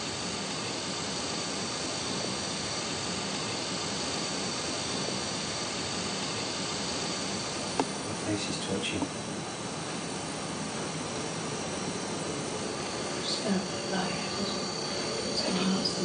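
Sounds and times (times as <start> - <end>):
faint high steady tones: 0.1 - 16.0
steady background hiss: 2.8 - 16.0.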